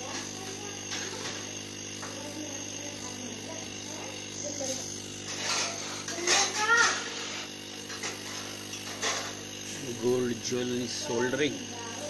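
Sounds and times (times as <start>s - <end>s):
soldering torch flame hissing: 0.0s - 12.0s.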